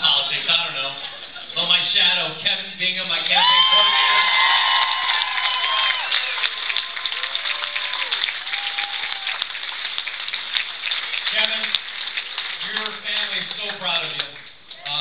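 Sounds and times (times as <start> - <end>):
audience clapping: 3.1 - 15.0
audience cheering and whooping: 3.2 - 10.4.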